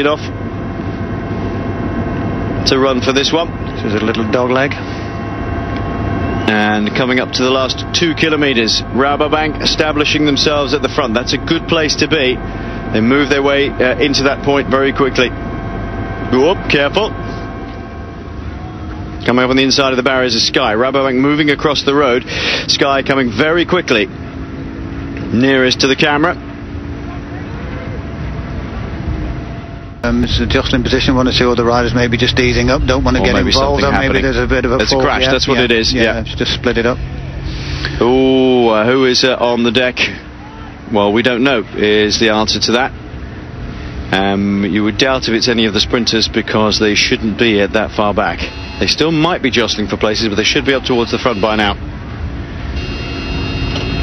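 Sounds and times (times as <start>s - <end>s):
bike riders passing: 0.0s - 54.0s
engine noise: 0.0s - 54.0s
faint high whine: 0.0s - 54.0s
wind noise: 27.5s - 37.7s.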